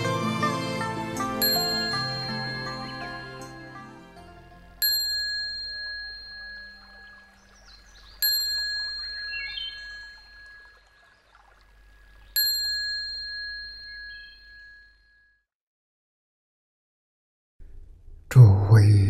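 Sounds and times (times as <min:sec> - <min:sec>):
bell ringing with high tone: 0:01.4 - 0:03.8, 0:04.8 - 0:07.3, 0:08.2 - 0:10.8, 0:12.4 - 0:15.4.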